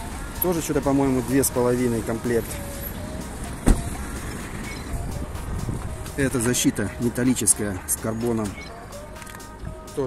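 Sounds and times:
sharp knock: 3.6s - 3.9s.

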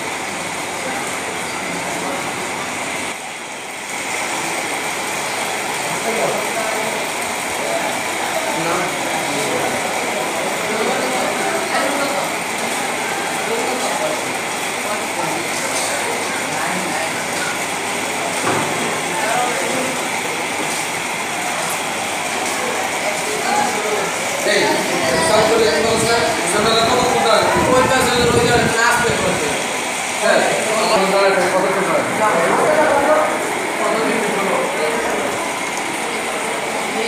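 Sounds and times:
hubbub of indistinct voices: 0.0s - 37.0s
loud steady background noise: 0.0s - 37.0s.

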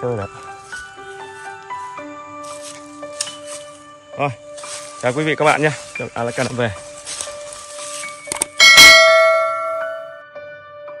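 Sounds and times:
bell chime ringing: 8.6s - 10.2s.

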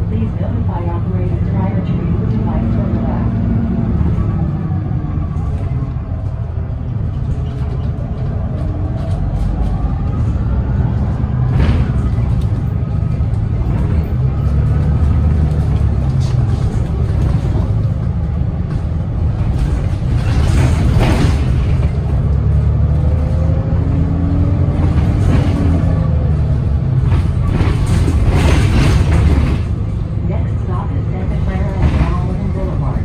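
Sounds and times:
diesel bus engine rumble: 0.0s - 33.0s.

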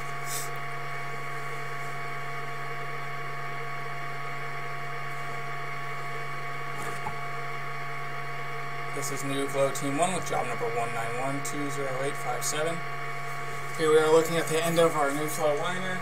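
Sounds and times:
electrical hum: 0.0s - 16.0s.

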